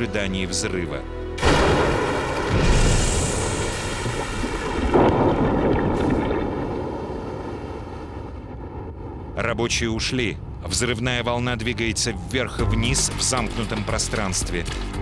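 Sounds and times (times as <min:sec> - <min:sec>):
music: 0:00.0 - 0:01.4, 0:11.6 - 0:15.0
explosion blast and rumble: 0:01.4 - 0:09.6.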